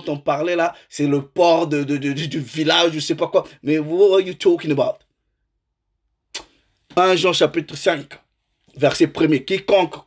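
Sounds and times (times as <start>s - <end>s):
man speaking: 0.0s - 5.1s, 6.4s - 10.0s.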